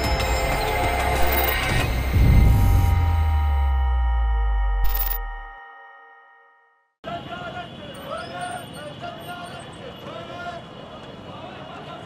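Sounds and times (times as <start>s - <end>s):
street traffic noise: 0.0s - 4.0s, 7.0s - 12.0s
marching crowd chanting: 9.7s - 12.0s.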